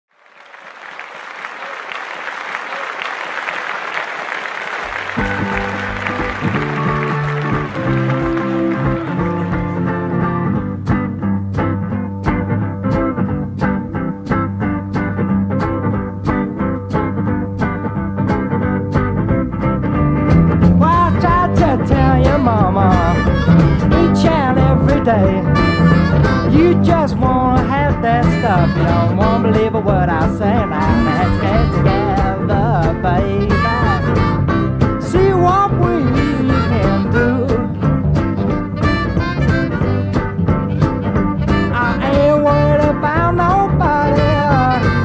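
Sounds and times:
applause-like haze: 0:00.1 - 0:10.2
bass and guitars: 0:04.7 - 0:45.0
harmonica bending notes: 0:04.8 - 0:11.2, 0:20.3 - 0:45.0
steady drum beat: 0:04.9 - 0:19.5, 0:20.1 - 0:45.0.

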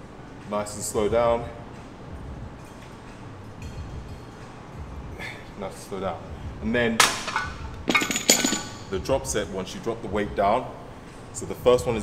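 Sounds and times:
ringing metal clinks: 0:07.3 - 0:08.9.

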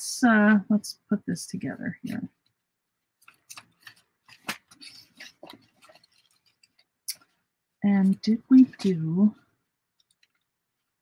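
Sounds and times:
paper envelopes rustling: 0:03.0 - 0:07.4.

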